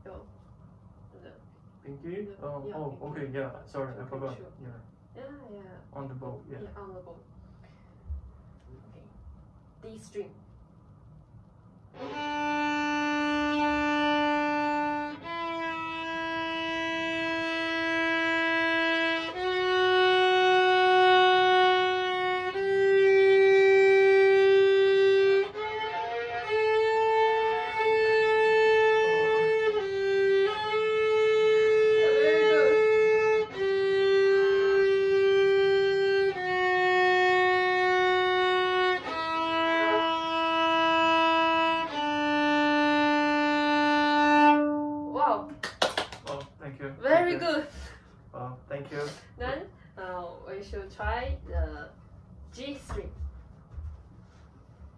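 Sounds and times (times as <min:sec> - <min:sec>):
violin slow bowed notes: 0:11.9 - 0:45.5.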